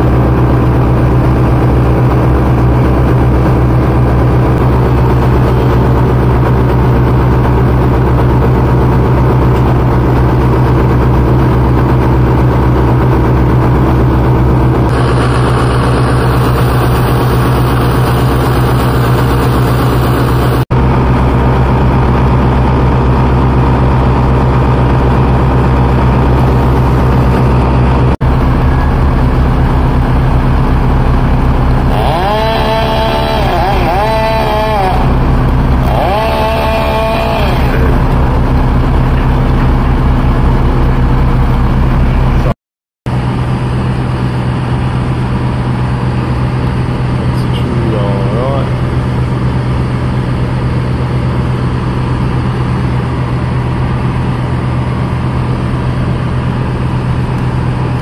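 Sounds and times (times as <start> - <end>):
truck engine humming: 0.0 - 58.0.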